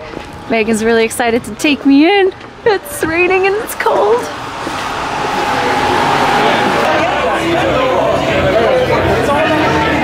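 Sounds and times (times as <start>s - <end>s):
crowd chatter in a bar: 0.0s - 10.0s.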